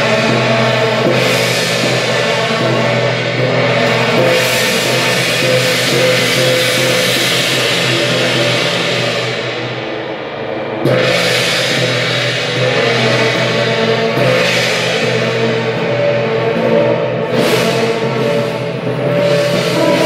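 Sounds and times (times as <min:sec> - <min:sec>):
cymbal crash: 0:00.0 - 0:20.0
procession drums and gongs: 0:00.0 - 0:20.0.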